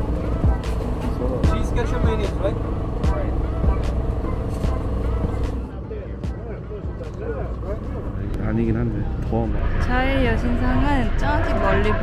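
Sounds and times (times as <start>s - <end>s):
background music: 0.0s - 12.0s
traffic rumble: 0.0s - 12.0s
voices: 0.2s - 12.0s.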